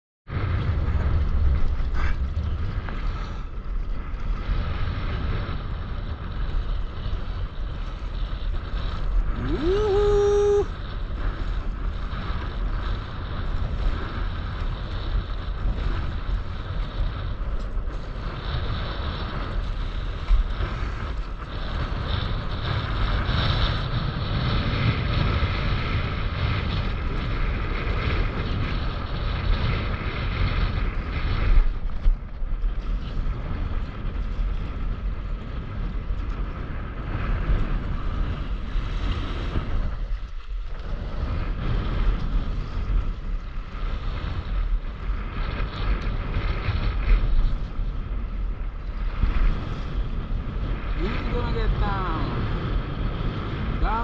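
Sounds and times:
wind buffeting microphone: 0.3s - 54.0s.

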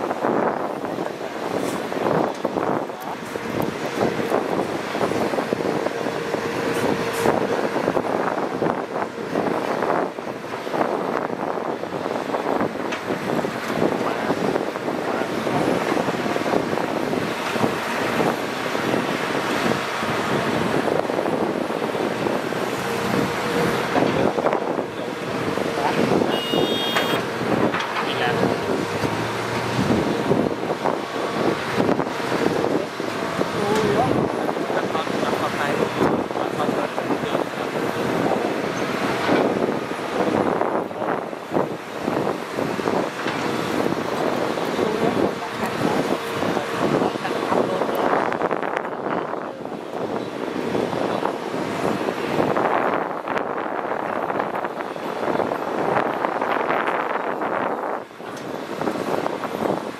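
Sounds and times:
diesel engines running: 0.0s - 59.9s.

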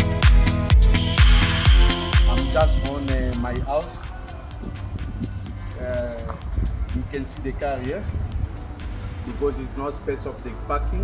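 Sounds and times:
man's drawn-out voice: 2.2s - 4.3s.

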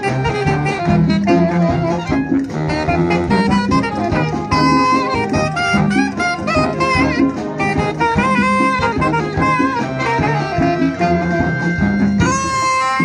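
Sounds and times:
wind band playing a tune: 0.0s - 13.0s.

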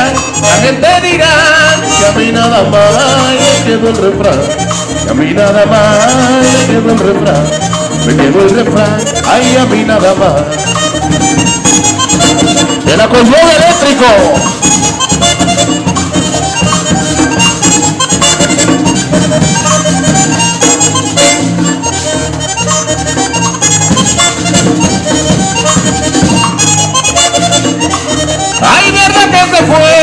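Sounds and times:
button accordion: 0.0s - 30.0s
repeating bass beat: 0.0s - 30.0s.

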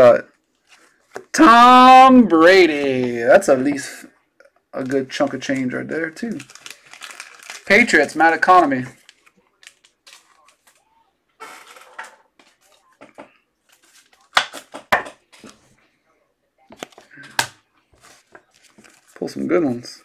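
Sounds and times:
cards rustling and clicking: 8.8s - 10.8s, 11.5s - 15.7s, 16.7s - 19.5s.

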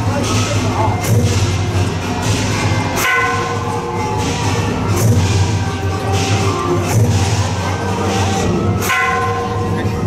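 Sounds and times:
loud background music: 0.0s - 10.0s
metal bell ringing: 0.0s - 10.0s.

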